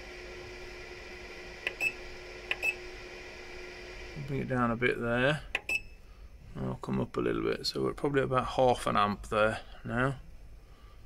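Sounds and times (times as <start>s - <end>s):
electrical hum: 0.0s - 11.0s
short clicking beeps: 5.6s - 6.0s.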